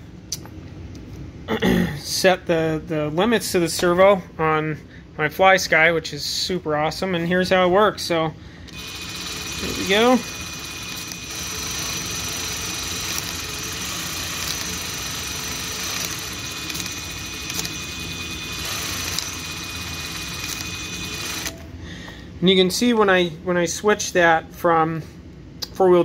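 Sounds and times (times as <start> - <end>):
electric motor whining over gears: 8.7 - 21.6.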